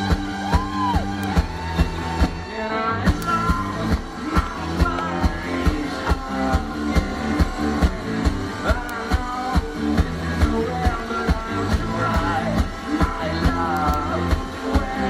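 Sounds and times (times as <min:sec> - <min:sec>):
driving drum beat: 0:00.0 - 0:15.0
live rock band playing: 0:00.0 - 0:15.0.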